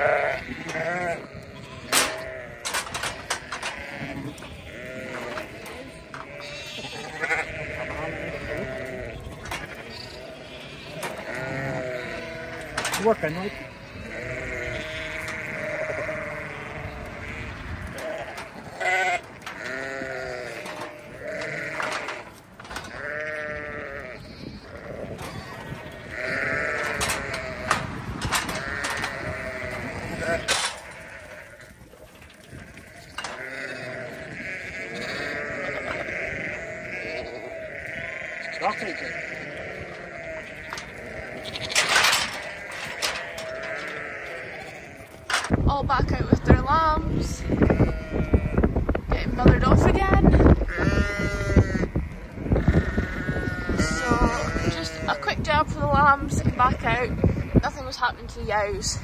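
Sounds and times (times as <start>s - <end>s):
sheep and lambs bleating: 0.0s - 59.0s.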